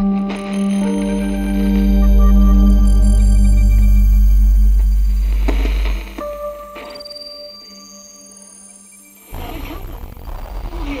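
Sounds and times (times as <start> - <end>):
wavering sliding tones: 0.0 - 9.0
rumbling synthesized noise: 0.9 - 6.9.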